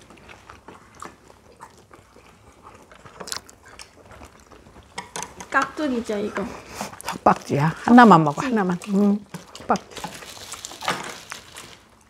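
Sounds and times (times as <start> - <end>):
chopsticks clicking on dishes: 4.9 - 5.8.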